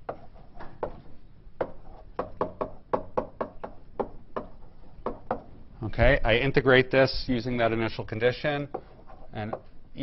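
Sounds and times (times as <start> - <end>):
chalk tapping on blackboard: 0.0 - 5.5, 8.6 - 9.8.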